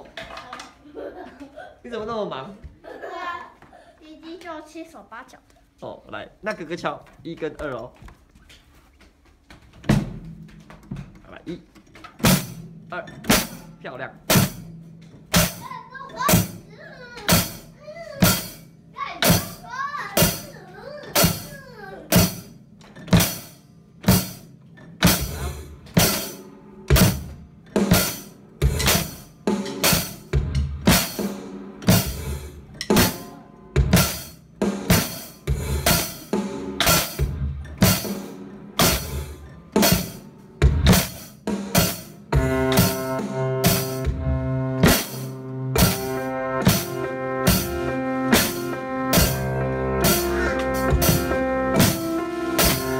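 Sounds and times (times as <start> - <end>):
drum kit beat: 9.8 - 11.0, 12.0 - 52.9
backing music: 23.1 - 52.9.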